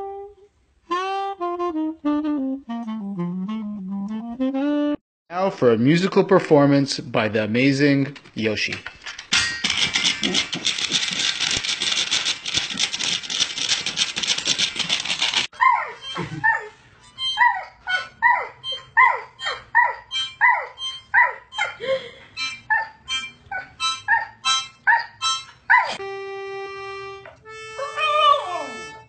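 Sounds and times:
dog yipping: 0:15.6 - 0:26.0
harmonica: 0:16.0 - 0:29.0.

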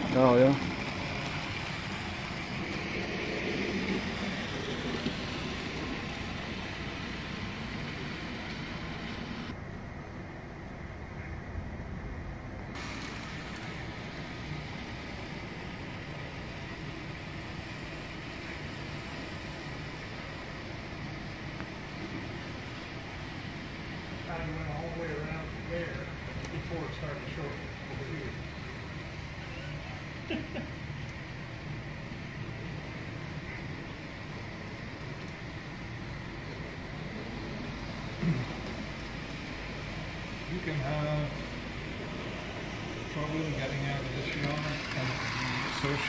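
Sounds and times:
model train rumbling on track: 0:00.0 - 0:09.6, 0:12.7 - 0:46.0.

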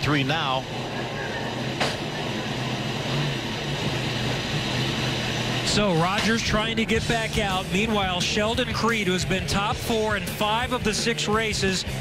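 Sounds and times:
car engine running at low revs: 0:00.0 - 0:12.0.

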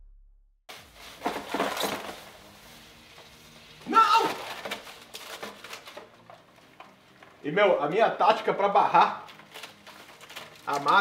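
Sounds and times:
liquid nitrogen boiling and crackling: 0:01.0 - 0:11.0.

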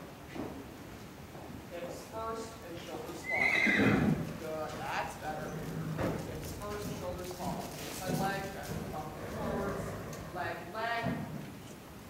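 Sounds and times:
horse whinnying: 0:03.2 - 0:04.4, 0:05.2 - 0:06.4, 0:08.9 - 0:10.5.

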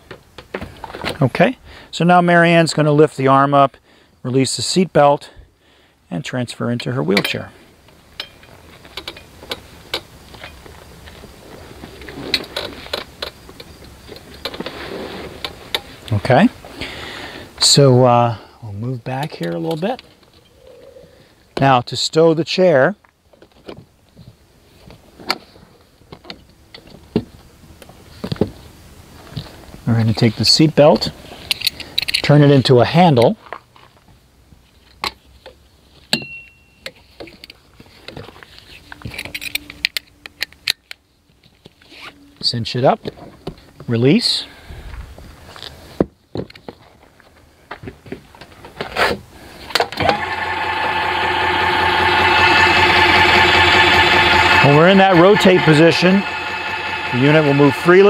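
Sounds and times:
electric motor running: 0:50.0 - 0:58.0.

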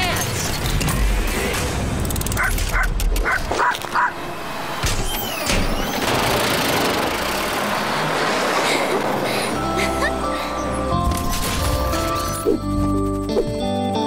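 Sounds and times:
background music: 0:06.5 - 0:14.0.

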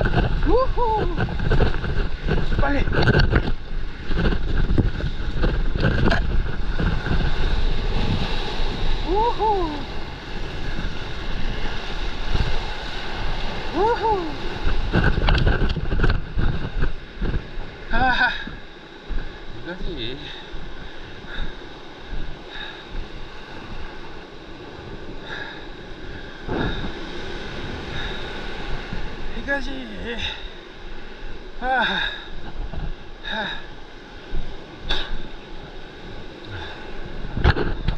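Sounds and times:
whitewater rushing: 0:00.0 - 0:01.8, 0:04.6 - 0:16.5
surf rushing and churning: 0:00.0 - 0:37.9
wind buffeting microphone: 0:00.0 - 0:37.9.

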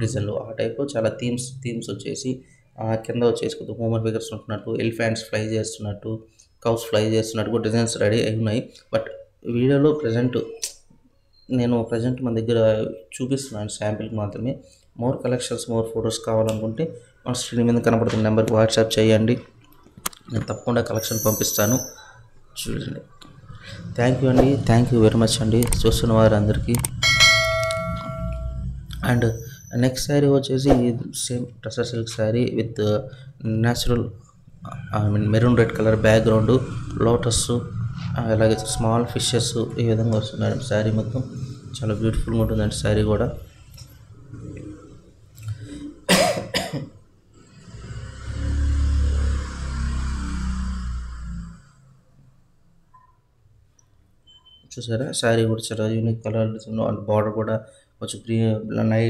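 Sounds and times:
bell chime: 0:21.0 - 0:22.0, 0:27.0 - 0:29.8
person coughing: 0:46.0 - 0:47.0.

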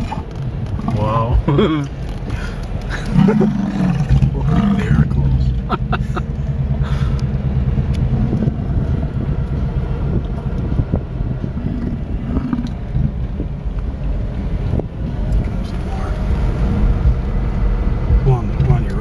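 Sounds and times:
car engine hum inside cabin: 0:00.0 - 0:19.0
person laughing: 0:01.4 - 0:01.9, 0:02.9 - 0:03.7, 0:05.6 - 0:07.2.

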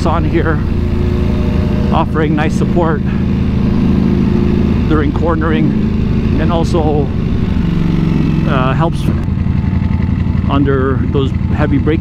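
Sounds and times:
motorbike engine at low revs: 0:00.0 - 0:12.0.

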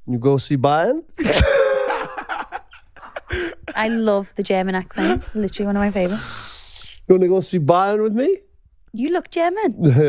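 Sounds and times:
woman and man laughing: 0:01.2 - 0:04.3.

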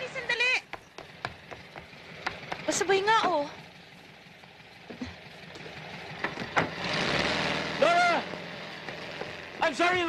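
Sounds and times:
car engine pulling away: 0:00.0 - 0:10.0
road noise: 0:00.0 - 0:10.0.

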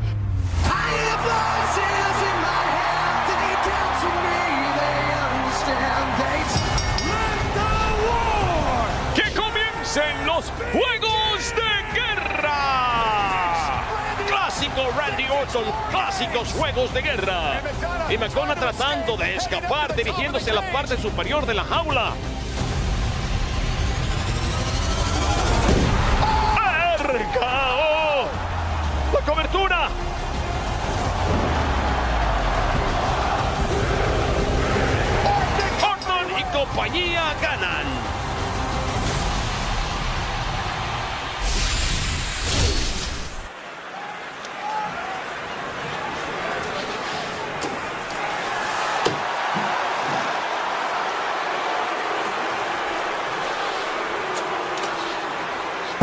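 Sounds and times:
background music: 0:00.0 - 0:42.8
arena crowd noise: 0:00.6 - 0:22.6, 0:23.5 - 0:56.0
shouted voices: 0:00.7 - 0:16.4.

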